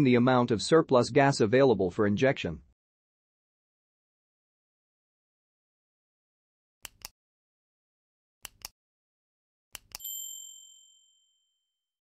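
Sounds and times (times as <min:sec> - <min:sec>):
mouse clicks: 0:06.8 - 0:07.1, 0:08.4 - 0:08.7, 0:09.8 - 0:10.0
high bright bell ding: 0:10.0 - 0:11.6.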